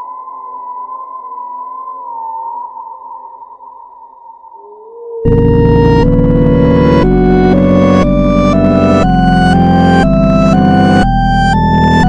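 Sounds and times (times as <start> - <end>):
high wavering synth tone: 0.0 - 12.0
low drone: 4.6 - 12.0
dense synth chord with heavy bass: 5.3 - 12.0.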